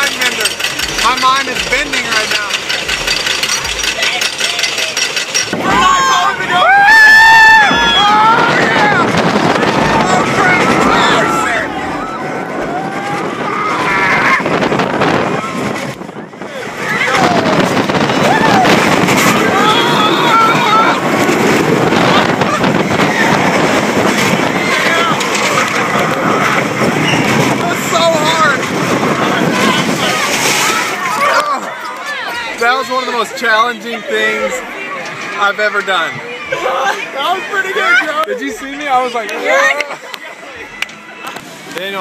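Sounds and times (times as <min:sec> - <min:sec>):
roller coaster chain clacking: 0:00.0 - 0:33.6
riders yelling and whooping: 0:03.9 - 0:15.9, 0:16.5 - 0:32.6
wind buffeting microphone: 0:05.4 - 0:31.4.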